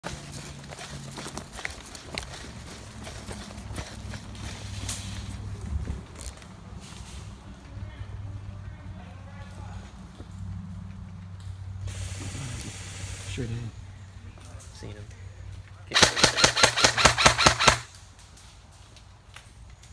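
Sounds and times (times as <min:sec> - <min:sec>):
footsteps running on leaves and twigs: 0:00.0 - 0:06.4.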